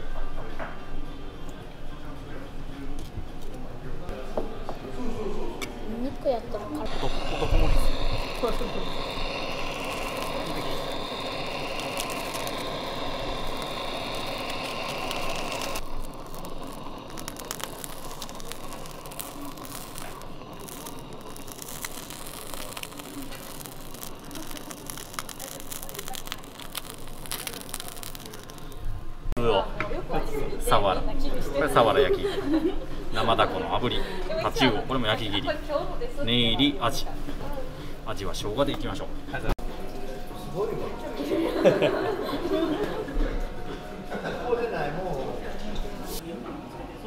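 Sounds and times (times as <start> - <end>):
restaurant background noise: 0.0 - 47.0
blowtorch flame hissing roar: 6.6 - 28.9.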